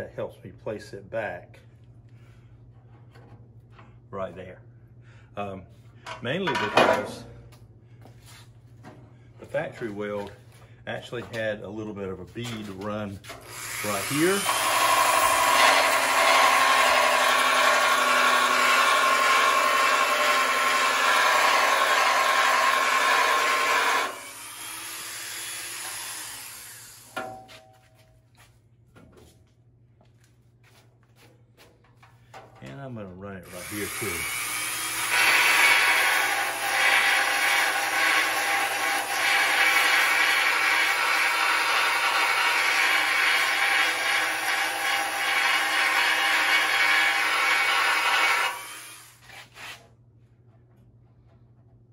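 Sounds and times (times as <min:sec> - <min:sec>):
belt sander grinding metal: 0:13.3 - 0:27.2.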